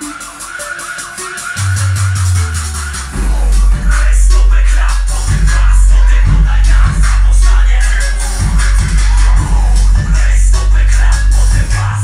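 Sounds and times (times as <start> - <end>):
deep bass through subwoofer: 0.0 - 12.0
loud electronic hip-hop music: 0.0 - 12.0.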